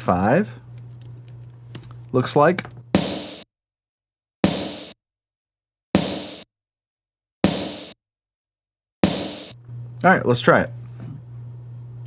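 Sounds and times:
snare drum hits: 0:03.0 - 0:03.4, 0:07.5 - 0:08.0, 0:09.0 - 0:09.6.

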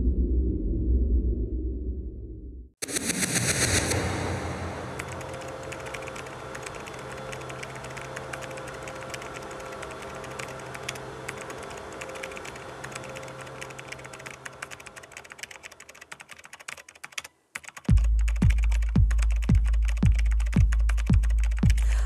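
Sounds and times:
sustained sub-bass: 0:00.0 - 0:05.1
low electronic drone: 0:00.0 - 0:15.2
keyboard typing clicks: 0:05.0 - 0:21.8
deep kick drum beat: 0:17.9 - 0:22.0.

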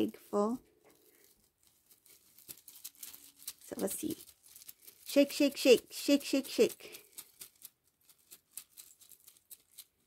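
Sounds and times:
charms rattling in cloth pouch: 0:00.8 - 0:10.0.

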